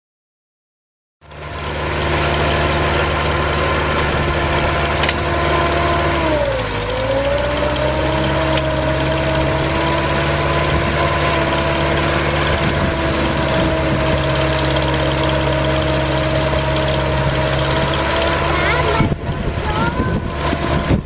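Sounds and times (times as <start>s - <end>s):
drill rig engine running: 1.2s - 21.0s.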